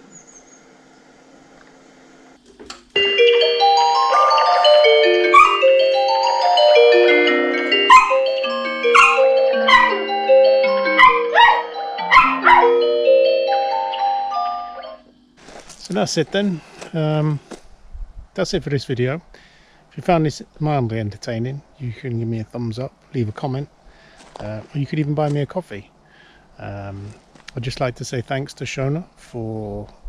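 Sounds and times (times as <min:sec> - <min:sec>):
electronic doorbell chime tune: 0:03.0 - 0:15.1
dog barking: 0:05.3 - 0:05.6, 0:07.9 - 0:08.2, 0:08.9 - 0:10.0, 0:11.0 - 0:12.8.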